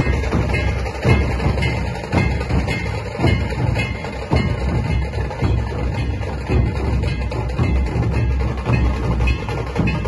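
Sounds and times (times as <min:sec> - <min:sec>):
barrel drums beaten with sticks: 0:00.0 - 0:10.0.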